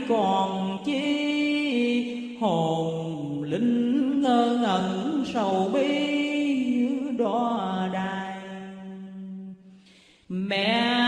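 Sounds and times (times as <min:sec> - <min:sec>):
person chanting: 0:00.0 - 0:09.7, 0:10.3 - 0:11.0.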